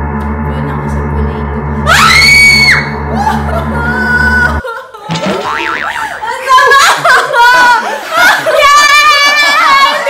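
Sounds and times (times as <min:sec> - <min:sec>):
cartoon boing sound effect: 0:05.1 - 0:06.2
woman shrieking laugh: 0:06.0 - 0:10.0.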